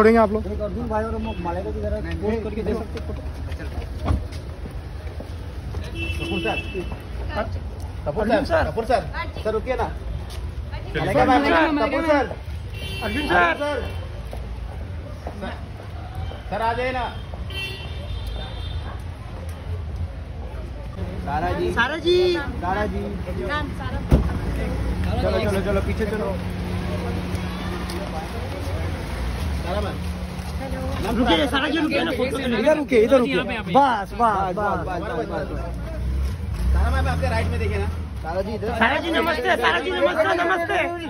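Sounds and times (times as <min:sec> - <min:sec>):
low street rumble: 0:00.0 - 0:41.0
faint crowd chatter: 0:02.2 - 0:41.0.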